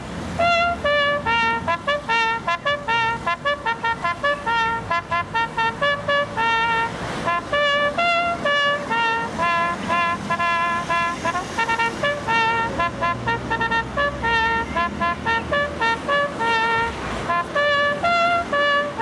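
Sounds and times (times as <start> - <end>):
road traffic: 0.0 - 19.0
solo trumpet melody: 0.3 - 19.0.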